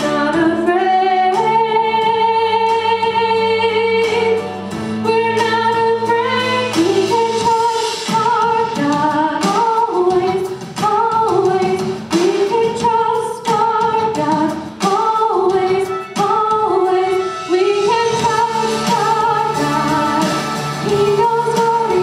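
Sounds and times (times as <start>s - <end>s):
woman singing into a microphone: 0.0s - 22.0s.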